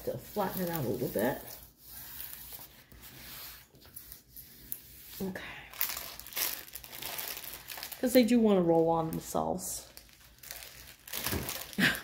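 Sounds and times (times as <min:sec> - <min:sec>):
plastic film crinkling: 0:05.7 - 0:12.0.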